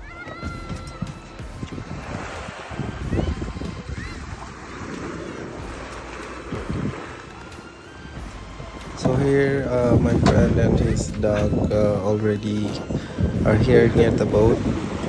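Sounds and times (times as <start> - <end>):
waves at water's edge: 0.0 - 15.0
wind buffeting microphone: 0.0 - 15.0.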